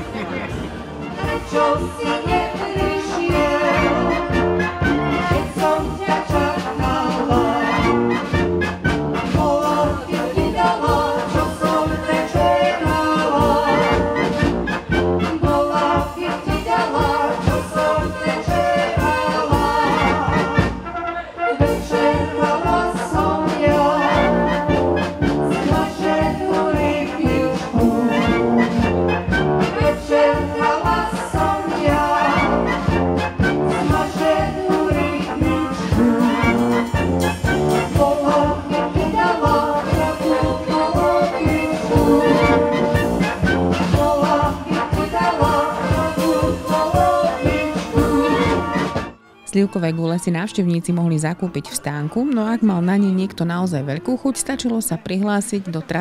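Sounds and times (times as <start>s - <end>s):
brass band playing: 0.0s - 56.0s.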